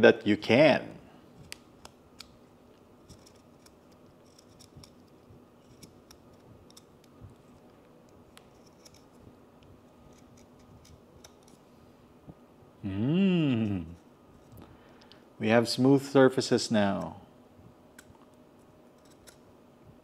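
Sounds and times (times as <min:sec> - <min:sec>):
small blade trimming plastic: 0:19.0 - 0:19.4.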